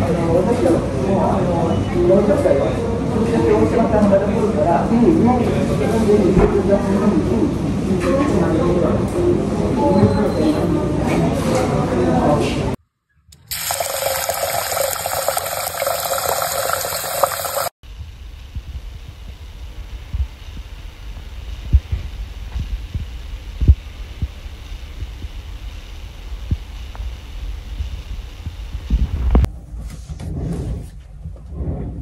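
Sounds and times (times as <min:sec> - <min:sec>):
tap water running into pot: 0:13.4 - 0:17.7
dull low thumps: 0:17.9 - 0:25.4.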